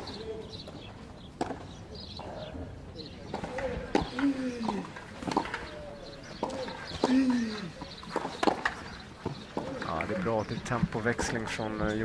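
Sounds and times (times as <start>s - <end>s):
pigeons cooing: 0.0s - 10.6s
tennis ball strikes: 8.1s - 9.8s.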